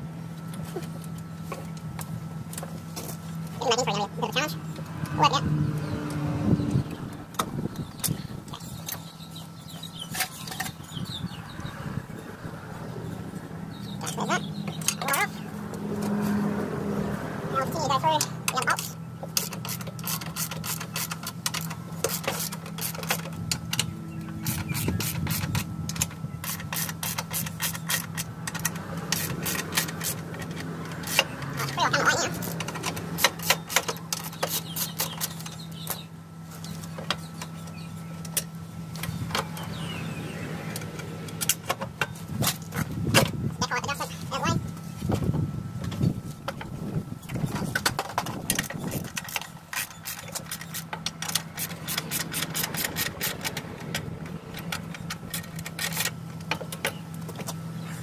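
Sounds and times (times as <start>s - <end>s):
steady low hum: 0.0s - 58.0s
hand tools clicking on metal: 18.2s - 36.0s, 47.3s - 57.6s.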